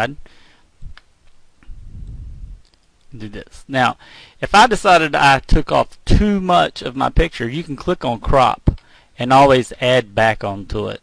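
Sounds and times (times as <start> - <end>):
low rumble: 1.6 - 2.7.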